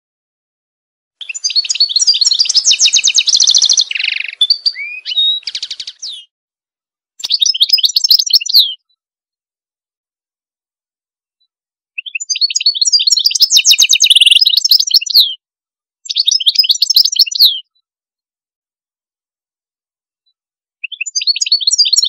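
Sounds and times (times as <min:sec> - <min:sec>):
songbird trilling and chirping: 0:01.2 - 0:06.3, 0:07.2 - 0:08.8, 0:12.0 - 0:15.4, 0:16.0 - 0:17.6, 0:20.8 - 0:22.0.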